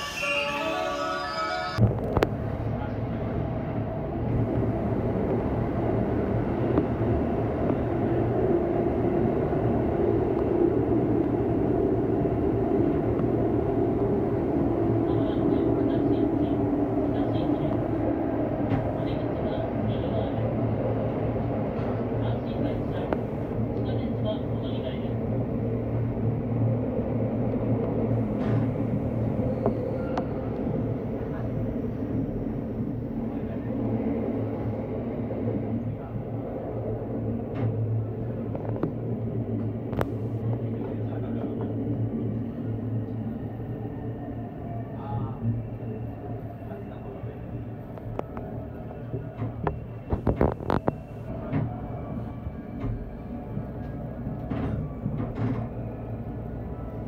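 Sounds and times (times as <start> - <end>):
train wheels rumbling on rail: 1.8 - 57.0.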